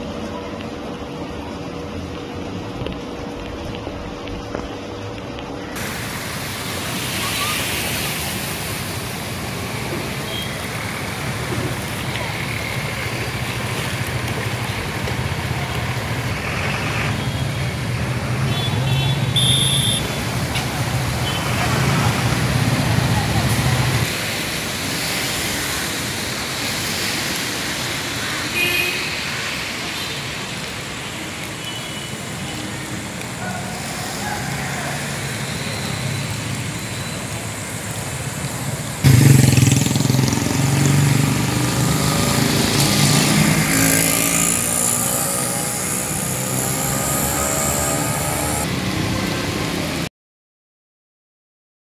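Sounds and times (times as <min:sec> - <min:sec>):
vehicle engines driving through water: 0:05.8 - 0:50.1
indistinct voices: 0:42.0 - 0:48.7.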